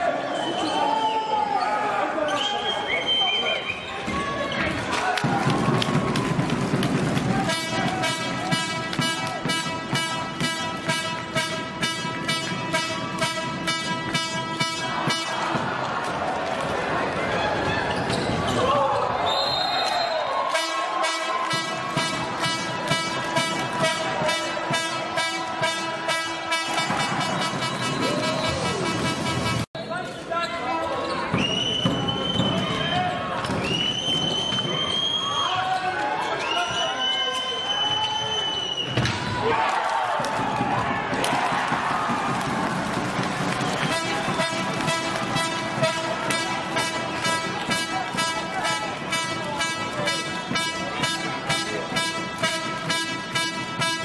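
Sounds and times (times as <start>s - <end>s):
crowd voices: 0.0s - 54.0s
rhythmic drumming or clapping: 4.7s - 16.9s, 20.5s - 29.7s, 39.8s - 54.0s
fan horn blasts: 7.4s - 15.6s, 20.5s - 29.7s, 43.8s - 54.0s.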